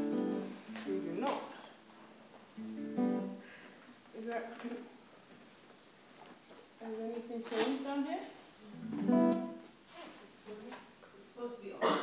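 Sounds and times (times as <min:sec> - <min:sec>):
acoustic guitar strumming: 0:00.0 - 0:01.3, 0:02.5 - 0:03.5, 0:08.6 - 0:09.7.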